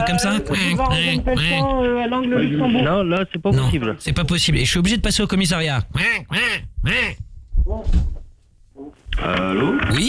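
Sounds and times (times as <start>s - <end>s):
man imitating duck quacks: 5.9s - 7.2s.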